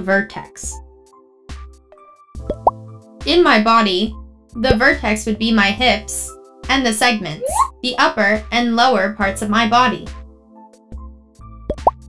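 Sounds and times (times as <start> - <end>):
soft cartoon background music: 0.0 - 12.0.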